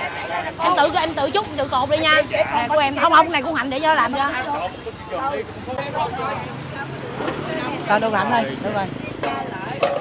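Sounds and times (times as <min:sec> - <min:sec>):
crowd talking: 0:00.0 - 0:10.0
street noise hum: 0:00.0 - 0:10.0.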